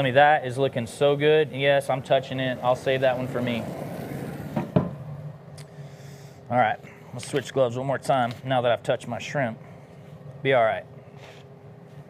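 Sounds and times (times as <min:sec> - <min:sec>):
sharp knock of object set down: 0:04.6 - 0:05.0.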